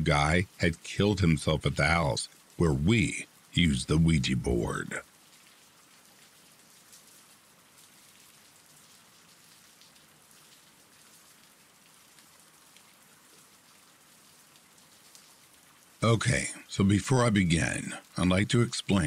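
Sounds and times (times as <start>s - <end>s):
faint steady rain: 0.0s - 19.0s.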